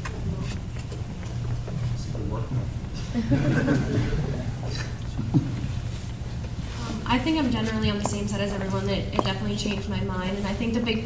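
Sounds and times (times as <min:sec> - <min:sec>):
room noise rumble: 0:00.0 - 0:11.0.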